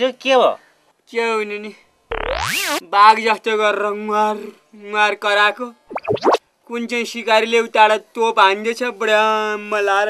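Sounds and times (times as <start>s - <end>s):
cartoon boing upward sweep: 2.1s - 2.8s, 5.9s - 6.4s.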